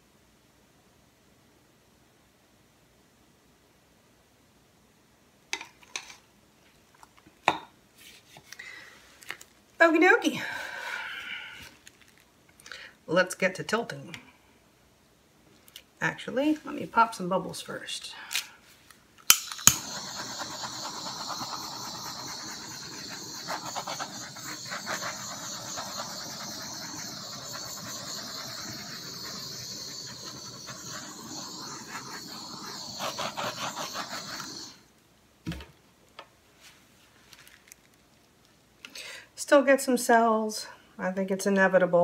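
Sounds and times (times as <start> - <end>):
torch flame hissing: 19.6 - 34.8.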